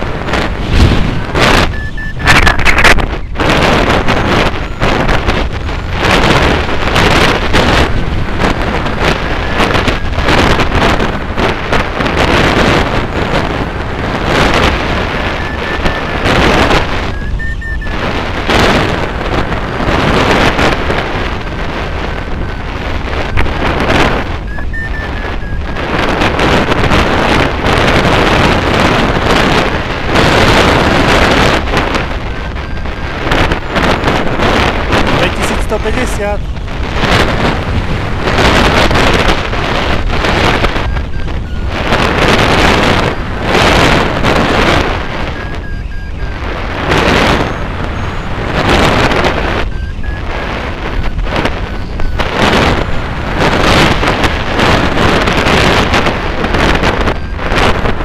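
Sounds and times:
wind buffeting microphone: 0.0s - 58.0s.

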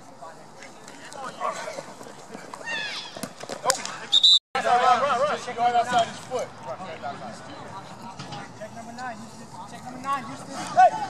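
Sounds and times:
players shouting: 2.6s - 8.7s, 9.7s - 11.0s.

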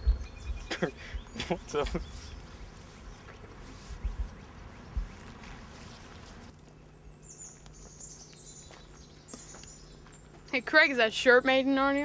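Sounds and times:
faint outdoor background noise: 0.0s - 12.0s
steady low hum: 0.0s - 12.0s
low bumps: 1.4s - 6.5s.

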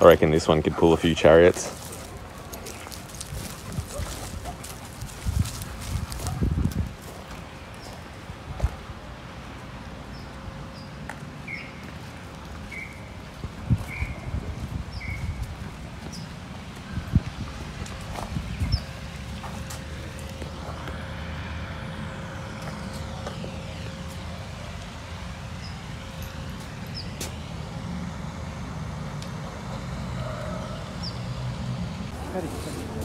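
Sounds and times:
vehicle passing: 15.6s - 33.0s.

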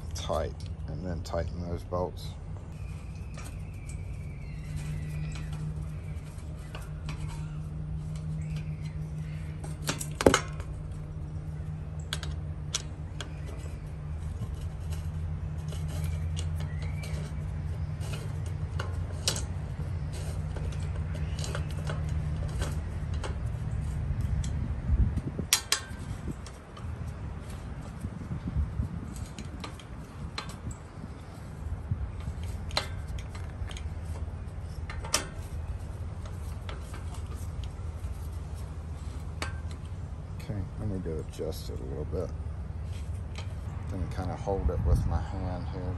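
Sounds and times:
steady low hum: 0.0s - 45.9s.

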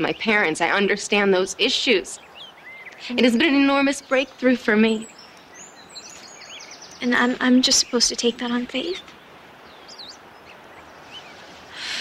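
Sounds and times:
faint birds chirping: 0.0s - 12.0s
steady background hiss: 0.0s - 12.0s.

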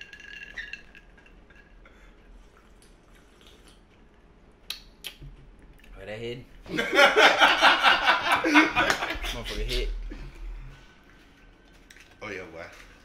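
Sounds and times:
ice clinking in a glass: 0.0s - 1.7s
liquid being sipped: 2.1s - 4.0s.

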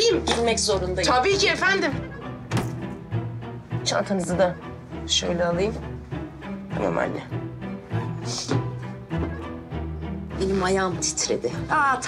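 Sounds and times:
low string music: 0.0s - 12.0s
shoe thunk on floor: 2.5s - 2.8s.

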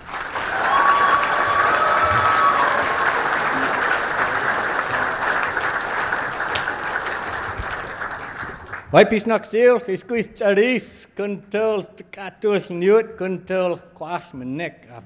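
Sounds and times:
audience applauding: 0.0s - 8.9s.

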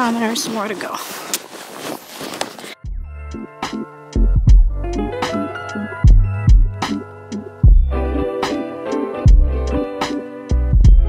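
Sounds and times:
background music with a beat: 2.8s - 11.0s.

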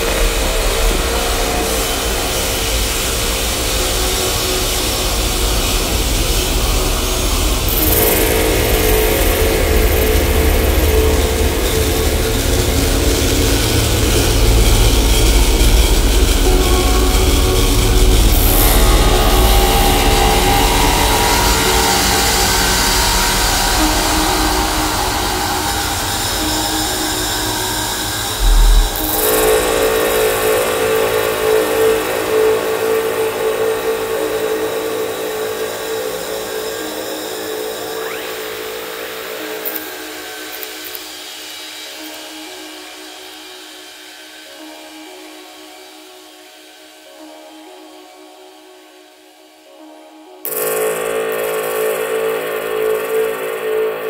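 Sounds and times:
droning tones: 0.0s - 40.7s
heavy low rumble: 12.4s - 29.8s.

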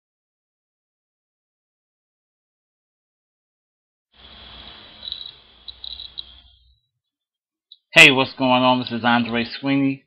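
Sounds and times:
low hiss: 4.2s - 6.7s
high-pitched steady tone: 4.2s - 6.8s.

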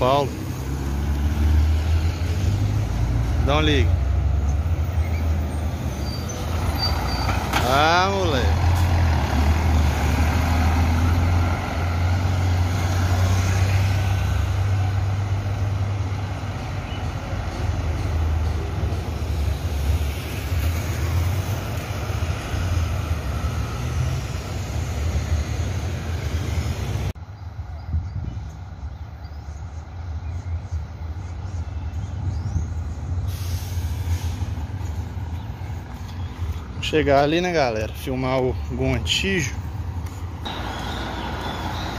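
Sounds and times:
bus diesel engine hum: 0.0s - 41.9s
traffic noise: 0.0s - 41.9s.

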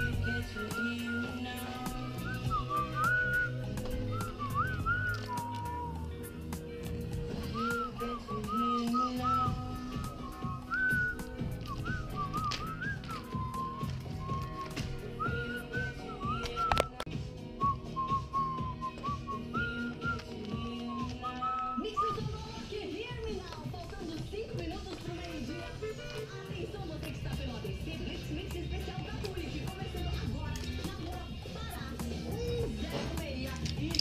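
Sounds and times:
whistled tune: 0.0s - 6.5s, 7.3s - 22.4s
background music with bass: 0.0s - 23.3s, 24.6s - 34.0s.

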